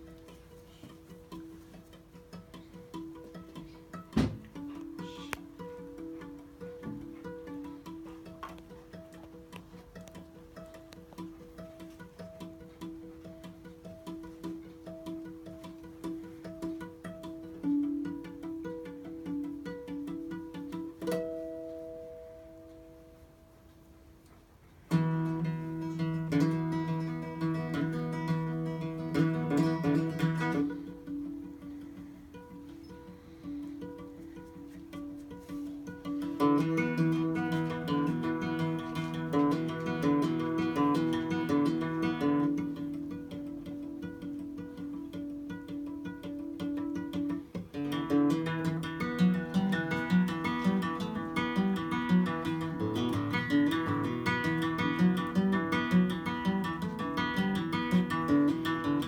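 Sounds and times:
acoustic guitar strumming chords: 0.0 - 24.2, 24.9 - 59.0.

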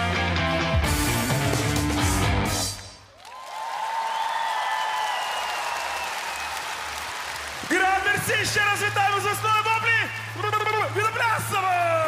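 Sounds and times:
live rock band playing: 0.0 - 2.8
audience applauding: 3.1 - 12.0.

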